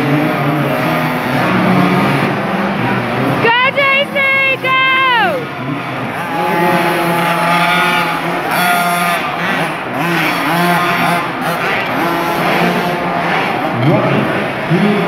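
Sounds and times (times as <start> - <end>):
motocross bike engines racing: 0.0 - 15.0.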